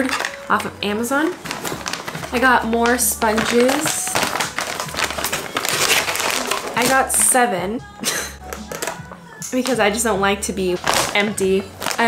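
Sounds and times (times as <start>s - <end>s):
plastic packs crinkling: 0.0s - 7.5s, 8.1s - 10.1s, 10.7s - 12.0s.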